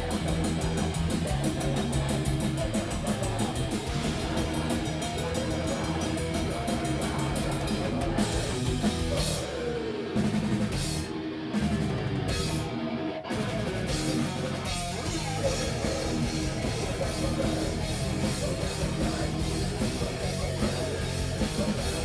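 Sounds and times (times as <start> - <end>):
distorted electric guitar: 0.0 - 22.0
fast drumming on drum kit: 0.0 - 22.0.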